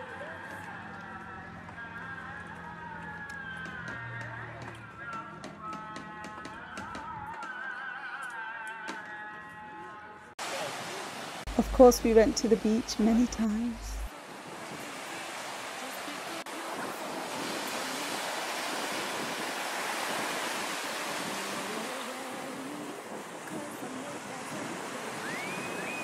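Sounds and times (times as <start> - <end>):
waves breaking on beach: 10.4 - 26.0
rising whistle-like tone: 25.2 - 26.0.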